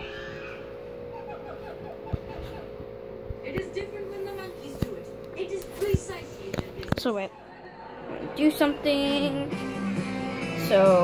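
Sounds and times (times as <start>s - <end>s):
low room hum: 0.0s - 11.0s.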